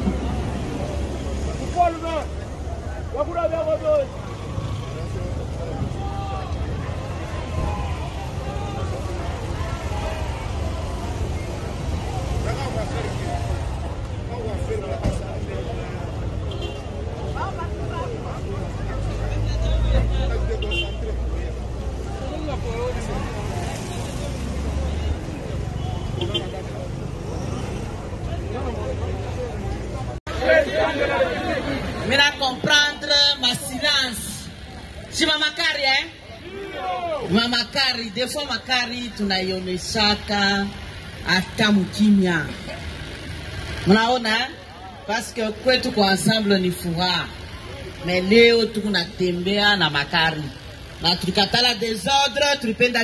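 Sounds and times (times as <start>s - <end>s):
indistinct voices talking: 0.0s - 53.0s.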